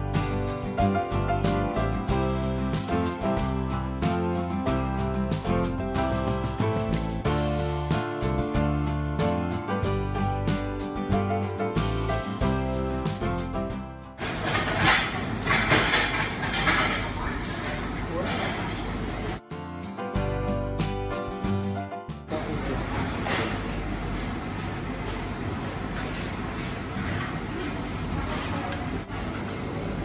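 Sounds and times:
busy restaurant din: 14.2 - 19.4, 22.3 - 30.0.

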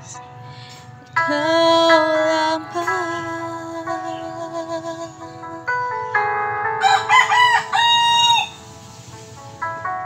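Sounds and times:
quiet music with held chords: 0.0 - 10.0
rooster crowing: 6.8 - 8.6.

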